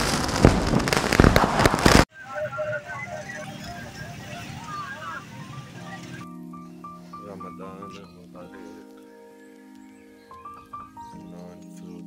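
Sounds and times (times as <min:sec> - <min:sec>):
dense crackling pops: 0:00.0 - 0:06.5, 0:07.2 - 0:11.9
faint chirping tones: 0:02.1 - 0:12.0.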